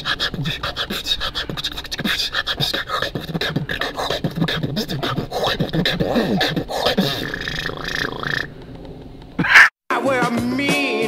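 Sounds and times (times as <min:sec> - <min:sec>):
beatboxer whistle-like tone: 0:00.0 - 0:08.5.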